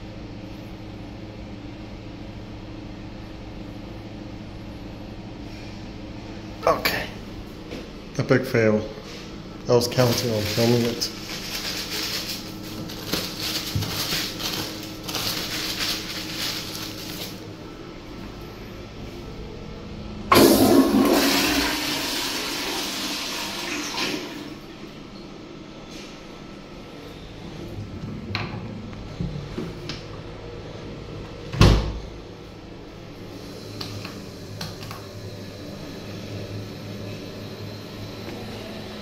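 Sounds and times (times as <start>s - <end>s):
paper towel crumpling: 9.8s - 17.5s
toilet flushing: 20.3s - 24.7s, 33.2s - 39.0s.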